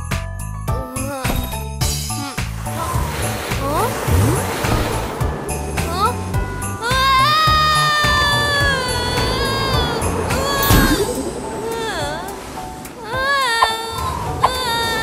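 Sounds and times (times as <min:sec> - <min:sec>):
children's song backing music: 0:00.0 - 0:15.0
long held cry: 0:06.8 - 0:12.4.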